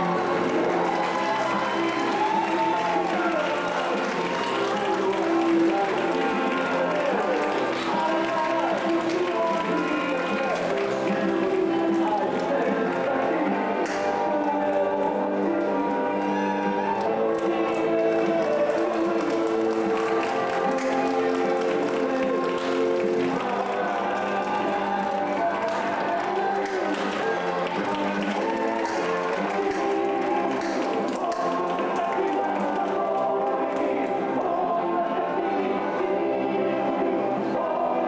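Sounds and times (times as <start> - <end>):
music with long held notes: 0.0 - 38.0.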